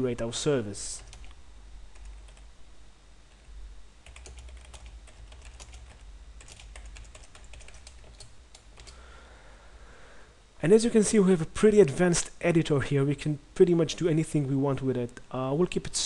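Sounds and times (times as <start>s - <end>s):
low steady hum: 0.0s - 16.0s
keyboard typing: 1.0s - 2.4s, 4.0s - 9.0s.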